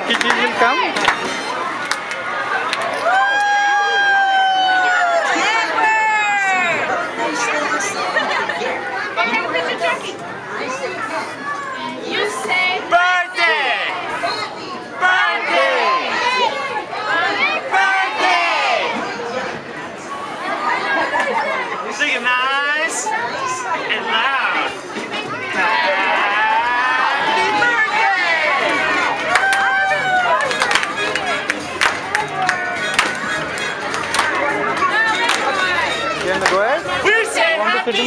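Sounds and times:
party crowd chatter: 0.0 - 38.0.

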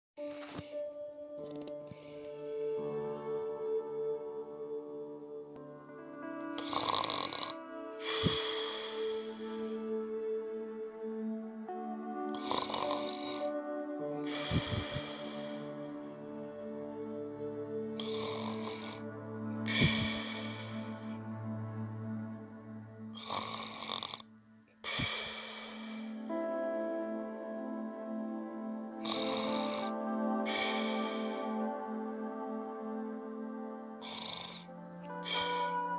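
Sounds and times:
soft ambient music: 0.2 - 35.9
loud rasping snore: 6.6 - 9.7, 12.3 - 15.8, 17.9 - 21.1, 23.2 - 26.3, 29.0 - 31.7, 33.8 - 35.9.

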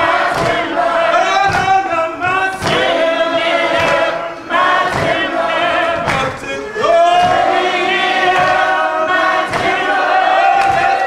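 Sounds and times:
hand claps: 0.0 - 6.6, 7.2 - 11.0
congregation singing gospel: 0.0 - 11.0
man leading singing: 0.0 - 11.0.

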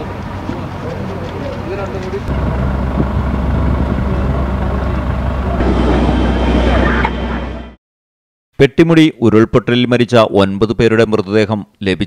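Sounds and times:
low rumble: 0.0 - 7.8.

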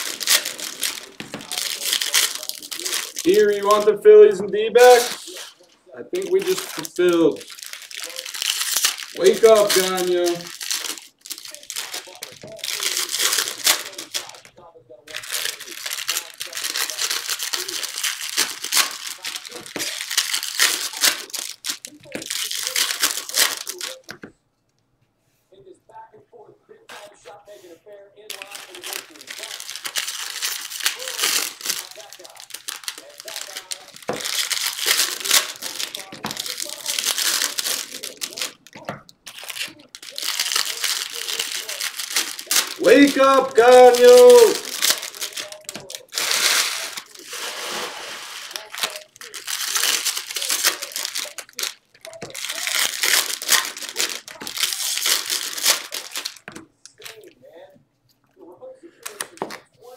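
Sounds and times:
foil wrappers tearing and crinkling: 0.0 - 14.5, 15.1 - 24.2, 28.3 - 57.3, 58.9 - 59.9
short voiced sound: 42.8 - 44.7.

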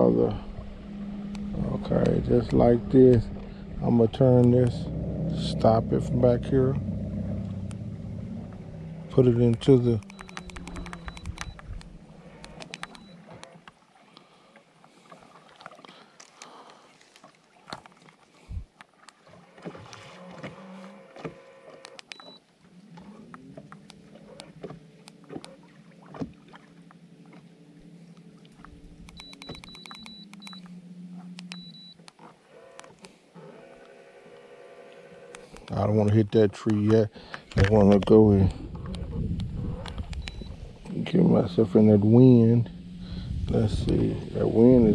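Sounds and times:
electric motor humming: 0.0 - 13.6
short high beeps: 10.0 - 11.8, 12.6 - 13.2, 29.2 - 30.7, 31.4 - 32.0, 40.2 - 40.6.

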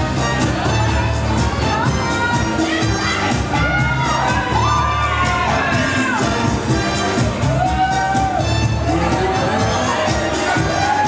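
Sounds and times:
cha-cha music with steady beat: 0.0 - 11.0
spectators cheering: 3.5 - 11.0.

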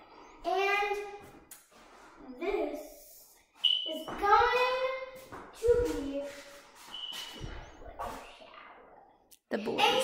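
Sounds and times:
footsteps on hard floor: 4.0 - 8.3.

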